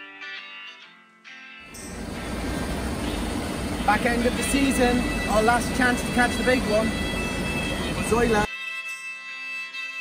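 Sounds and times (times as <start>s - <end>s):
low outdoor rumble: 1.7s - 8.5s
man's voice: 3.8s - 6.9s, 8.0s - 8.5s.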